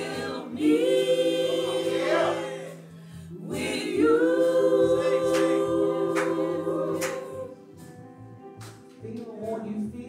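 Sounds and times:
choir singing: 0:00.0 - 0:07.8.

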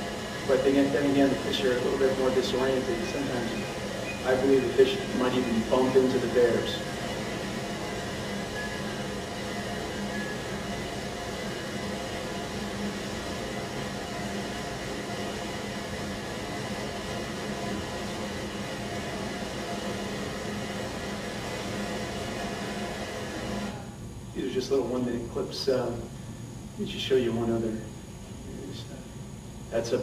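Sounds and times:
faint hum: 0:00.0 - 0:30.0.

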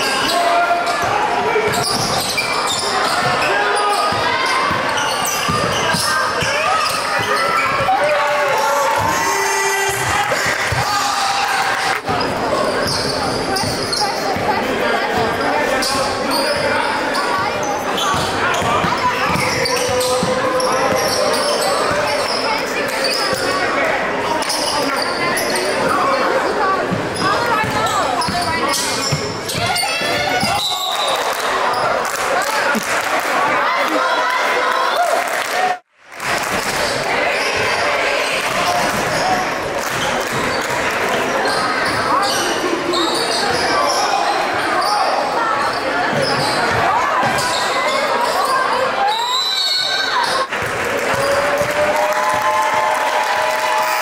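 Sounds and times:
indistinct voices echoing: 0:00.0 - 0:52.6.

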